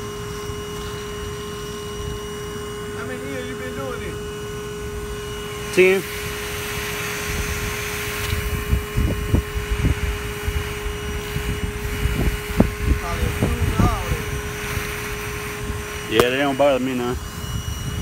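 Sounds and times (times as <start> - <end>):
vacuum whine: 0.0 - 18.0.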